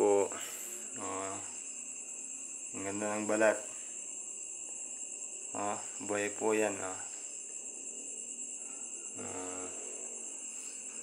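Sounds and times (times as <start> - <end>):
crickets trilling: 0.0 - 11.0
man humming: 9.1 - 10.2.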